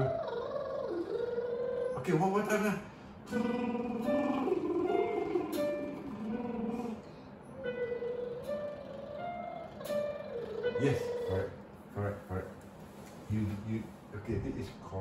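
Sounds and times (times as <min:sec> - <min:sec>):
electronic keyboard accompaniment: 0:03.3 - 0:11.7.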